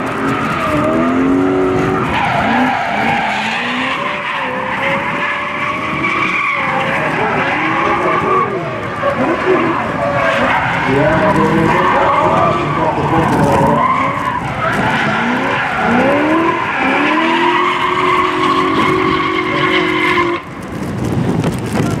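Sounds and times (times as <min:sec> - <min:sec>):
car engine revving hard: 0:00.0 - 0:20.5
tyres screeching: 0:00.2 - 0:20.5.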